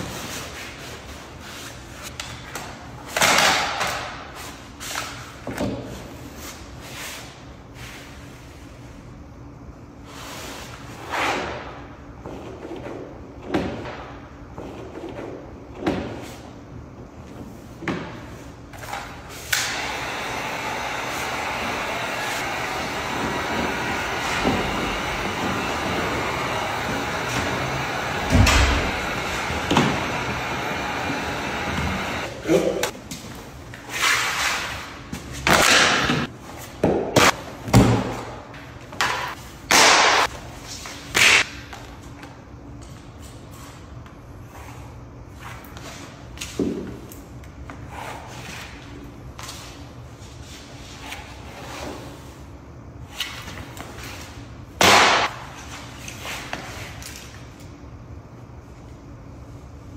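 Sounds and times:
heat gun blowing hiss: 0:19.5 - 0:32.3.

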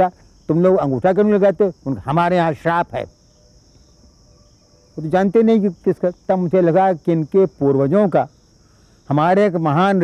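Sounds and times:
insect chorus trilling: 0:00.0 - 0:10.0.

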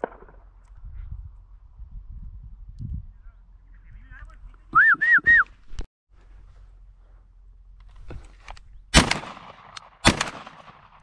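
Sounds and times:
whistled notes: 0:04.7 - 0:05.6.

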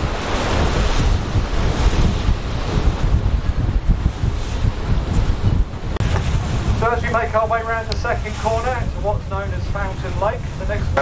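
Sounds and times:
choppy water rushing: 0:00.0 - 0:11.0
wind buffeting microphone: 0:00.0 - 0:11.0.

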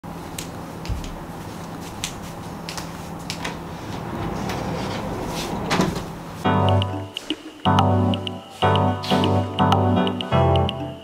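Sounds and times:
footsteps: 0:00.8 - 0:06.5
sliding door rolling on track: 0:03.4 - 0:06.4.

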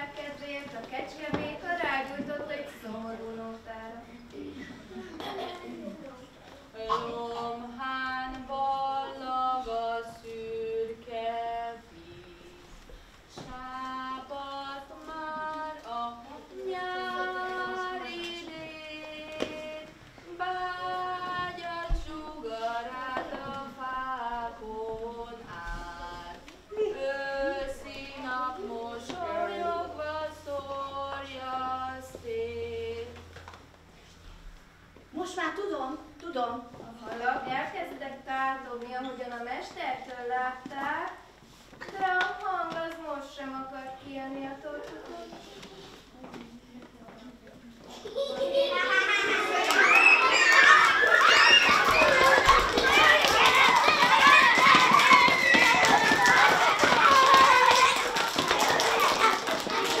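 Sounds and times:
children calling out and chattering: 0:44.5 - 1:00.0.

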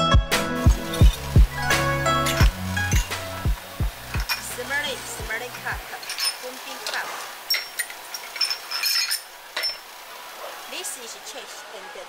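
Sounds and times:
porcelain tea cups clinking: 0:00.8 - 0:03.3, 0:04.0 - 0:10.0.

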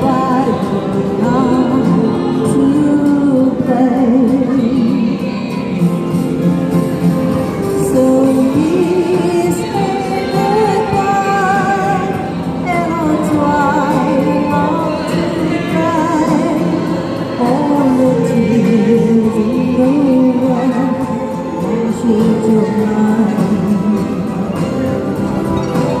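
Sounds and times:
woman singing with vibrato: 0:00.0 - 0:06.2, 0:07.6 - 0:25.1.

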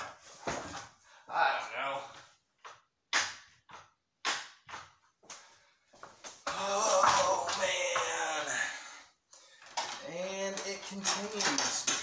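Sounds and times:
man's wordless voice: 0:09.9 - 0:12.0.

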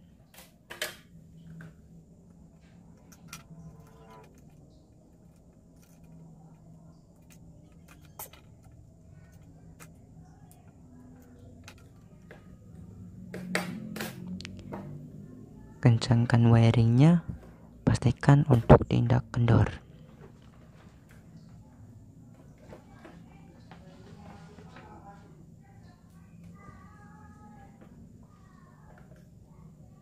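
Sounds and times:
low steady hum: 0:00.0 - 0:30.0.

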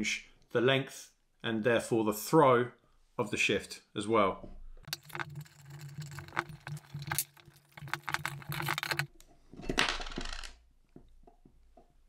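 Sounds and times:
metal parts clicking and clinking: 0:04.9 - 0:09.1.

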